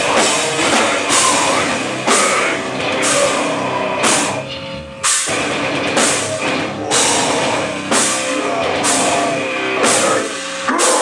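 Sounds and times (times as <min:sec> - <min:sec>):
live metal band playing: 0:00.0 - 0:11.0.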